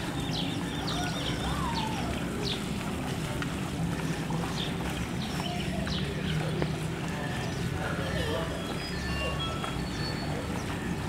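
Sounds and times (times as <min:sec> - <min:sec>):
small birds chirping: 0:00.0 - 0:02.8, 0:04.0 - 0:10.8.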